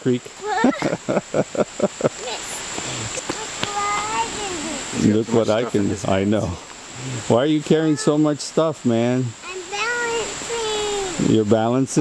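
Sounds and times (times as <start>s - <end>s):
creek rushing: 0.0s - 12.0s
person laughing: 0.6s - 2.2s.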